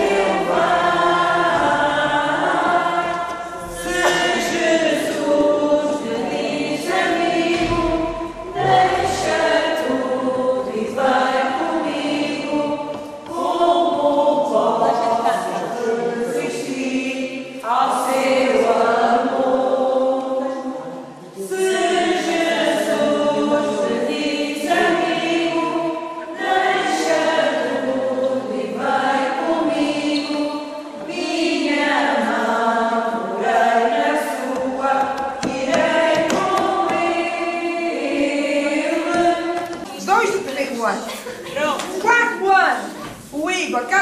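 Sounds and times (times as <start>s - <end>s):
young voices singing a hymn: 0.0s - 44.0s.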